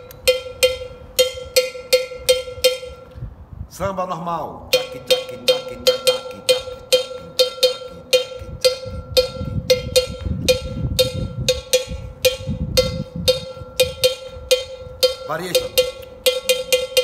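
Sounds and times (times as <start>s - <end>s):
cowbell struck with stick: 0.0s - 3.1s, 4.7s - 17.0s.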